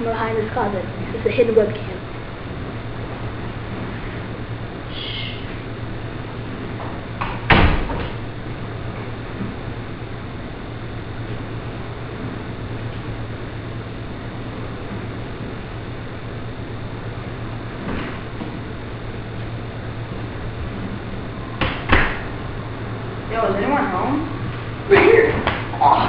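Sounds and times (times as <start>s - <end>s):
low electrical hum: 0.0s - 26.0s
closet door shutting with knock: 7.4s - 8.2s.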